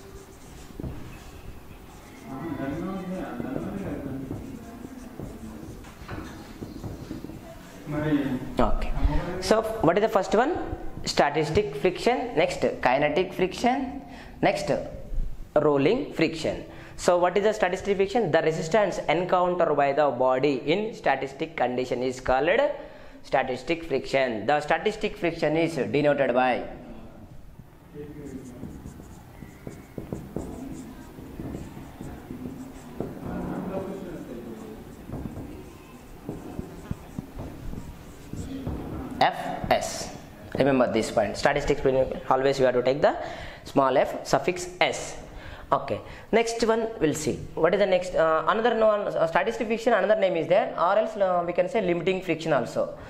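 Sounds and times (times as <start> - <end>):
marker squeaking on whiteboard: 0.0 - 7.9, 27.8 - 40.3
light pen taps: 4.2 - 7.4, 28.5 - 33.4, 34.5 - 38.8.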